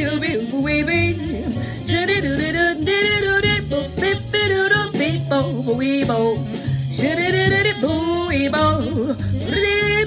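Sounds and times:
jazz backing with bass: 0:00.0 - 0:10.0
woman scat singing: 0:07.0 - 0:10.0.

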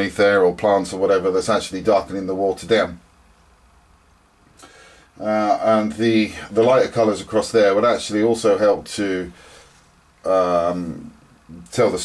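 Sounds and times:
faint hiss: 0:00.0 - 0:12.0
faint low hum: 0:00.0 - 0:12.0.

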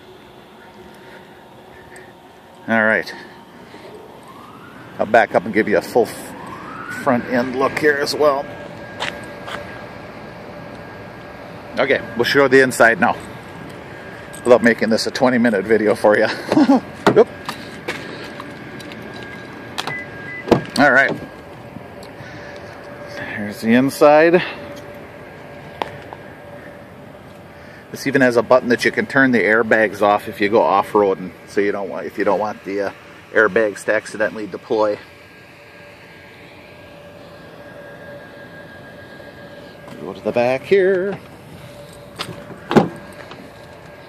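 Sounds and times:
faint siren wailing: 0:00.0 - 0:44.0
outdoor background noise: 0:00.0 - 0:44.0.

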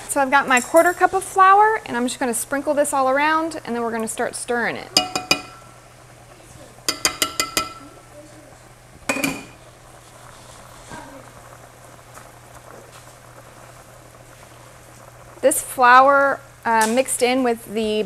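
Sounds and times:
pot bubbling at a boil: 0:00.0 - 0:18.0
butter sizzling: 0:00.2 - 0:18.0
metal cup tapping pan rim: 0:05.0 - 0:05.7, 0:06.9 - 0:07.9, 0:09.1 - 0:09.6.

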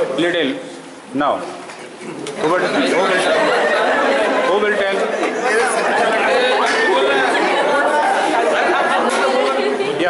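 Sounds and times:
young people chattering: 0:01.8 - 0:10.0.

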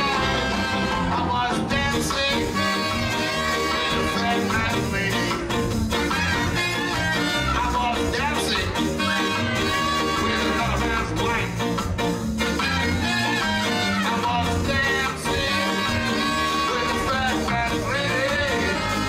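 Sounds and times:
horn section: 0:00.0 - 0:11.6, 0:12.4 - 0:19.0
ska band playing: 0:00.0 - 0:19.0.

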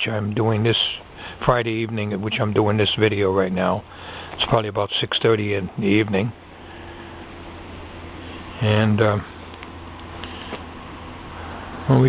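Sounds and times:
man talking: 0:00.0 - 0:06.4, 0:08.6 - 0:09.4
low background hum: 0:00.0 - 0:12.0.

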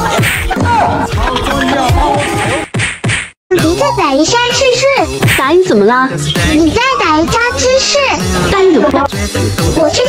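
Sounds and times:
background music: 0:03.5 - 0:10.0.

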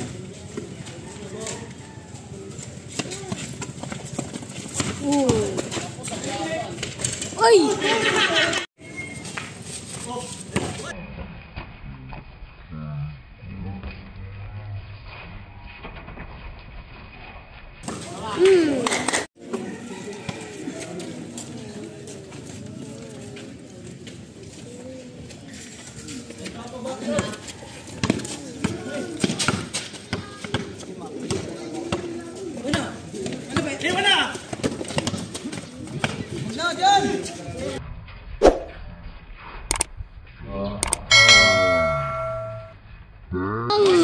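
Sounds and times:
background chatter of voices: 0:00.0 - 0:11.0, 0:17.9 - 0:37.8
bell-like chime ringing: 0:41.1 - 0:42.8
tone falling in pitch: 0:41.1 - 0:42.8.

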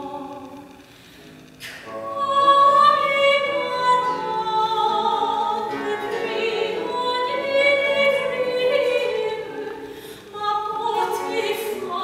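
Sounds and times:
soprano singing: 0:00.0 - 0:00.7, 0:01.8 - 0:12.0
lute playing: 0:01.6 - 0:12.0.

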